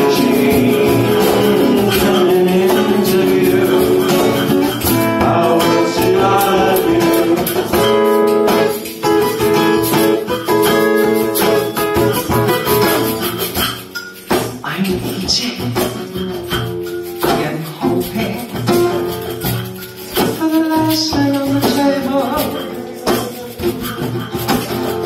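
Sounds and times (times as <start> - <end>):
person singing: 0.0 - 8.8, 20.1 - 25.0
cajon beat: 0.0 - 25.0
guitar playing: 0.0 - 25.0.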